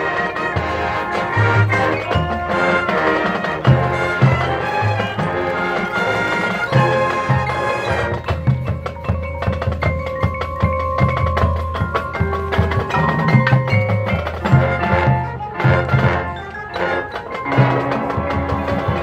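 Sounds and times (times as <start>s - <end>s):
marching band playing: 0.0s - 19.0s.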